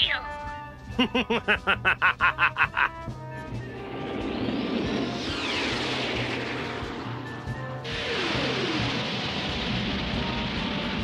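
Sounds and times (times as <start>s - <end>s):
background music: 0.0s - 11.0s
jet-like rush: 3.5s - 10.1s.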